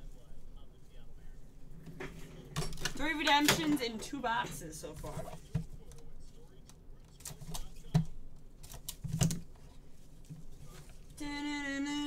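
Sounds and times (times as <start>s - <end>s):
cards handled: 5.0s - 11.2s.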